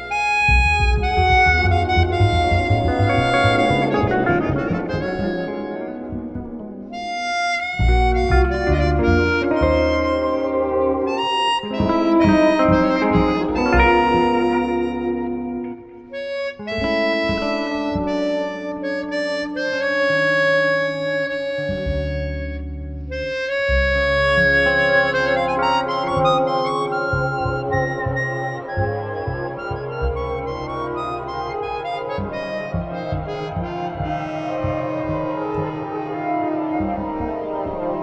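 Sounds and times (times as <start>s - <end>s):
chromatic harmonica melody: 0.0s - 38.0s
guitar: 0.0s - 38.0s
plucked bass notes: 0.0s - 38.0s.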